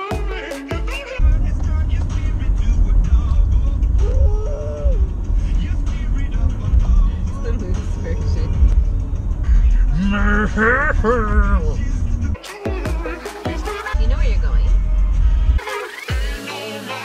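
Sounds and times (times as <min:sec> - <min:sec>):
car road noise rumble: 0:01.2 - 0:12.4, 0:13.6 - 0:15.6.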